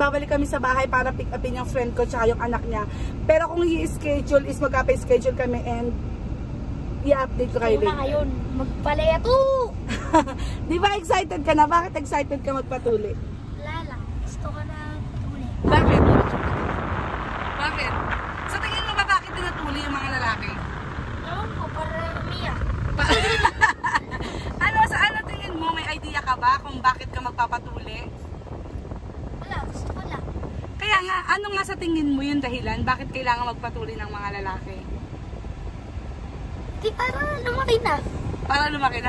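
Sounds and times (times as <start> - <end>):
car rumble from inside cabin: 0.0 - 39.0.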